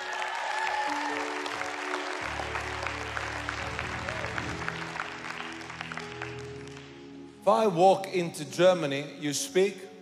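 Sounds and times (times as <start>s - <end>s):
congregation applauding: 0.0s - 7.3s
soft music of held chords: 0.0s - 10.0s.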